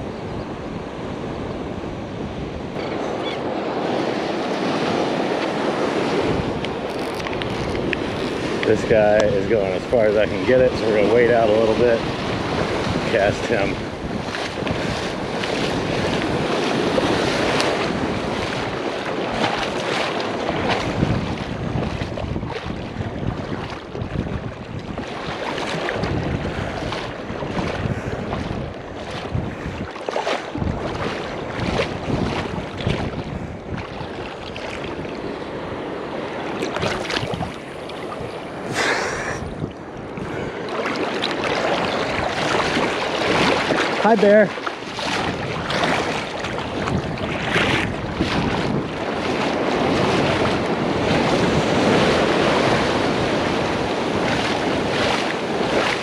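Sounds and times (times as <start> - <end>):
ocean surf washing: 0.0 - 56.0
wind buffeting microphone: 0.0 - 56.0.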